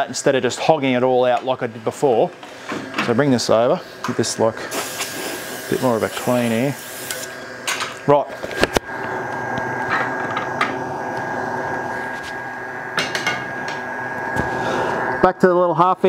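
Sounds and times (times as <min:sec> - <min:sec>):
wood lathe humming: 0:08.8 - 0:15.3.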